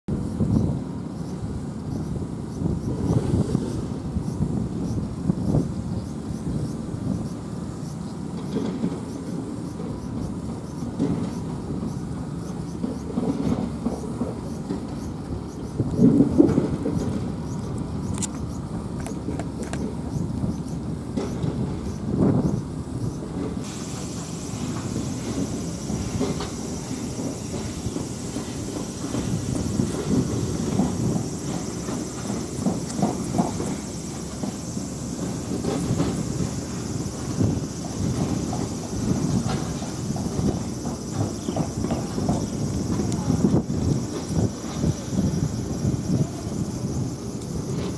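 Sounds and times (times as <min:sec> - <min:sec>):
low rumble of vehicle: 0:00.1 - 0:47.9.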